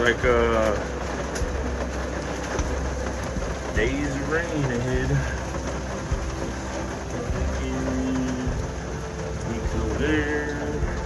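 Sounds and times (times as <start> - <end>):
heavy rain on a van: 0.0 - 11.0
low rumble: 0.0 - 11.0.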